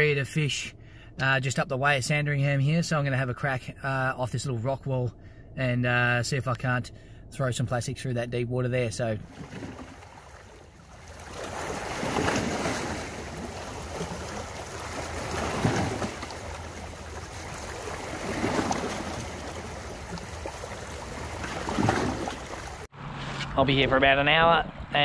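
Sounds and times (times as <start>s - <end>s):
waves washing over rocks: 9.3s - 22.9s.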